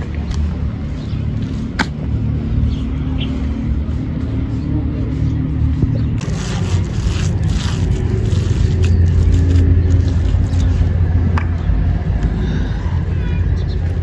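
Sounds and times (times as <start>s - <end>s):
large vehicle engine rumbling: 0.0s - 14.0s
wet dung scraped by hand: 6.2s - 10.9s.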